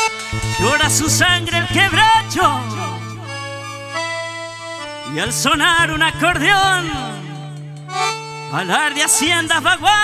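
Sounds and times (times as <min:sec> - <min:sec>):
accordion melody: 0:00.0 - 0:10.0
guitar bass line: 0:00.0 - 0:10.0.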